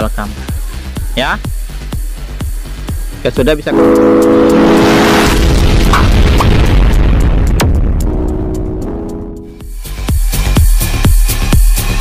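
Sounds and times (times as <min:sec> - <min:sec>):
short high blips: 0:03.7 - 0:06.2
deep boom: 0:03.8 - 0:09.7
whooshing rush: 0:04.2 - 0:08.2.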